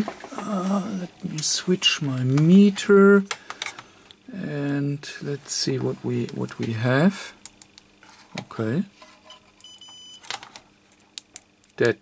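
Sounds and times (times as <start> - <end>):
multimeter beep: 9.3 - 10.3.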